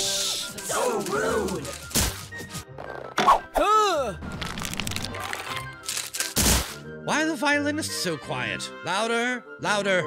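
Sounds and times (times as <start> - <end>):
orchestral background music: 0.0 - 10.0.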